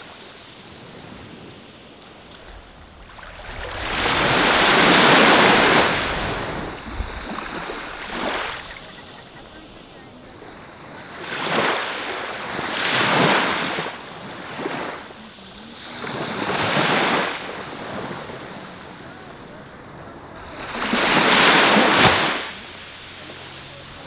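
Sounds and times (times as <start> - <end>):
small waves breaking on sand: 0.0 - 24.0.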